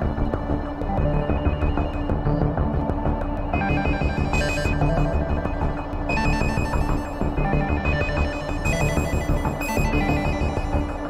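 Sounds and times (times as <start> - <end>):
bright repeating synth tones: 0.0 - 11.0
pulsing synth bass: 0.0 - 11.0.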